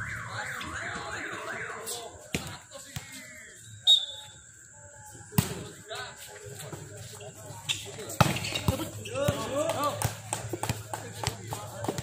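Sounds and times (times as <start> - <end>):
referee's whistle blast: 3.7 - 4.4
faint voices: 4.3 - 12.0.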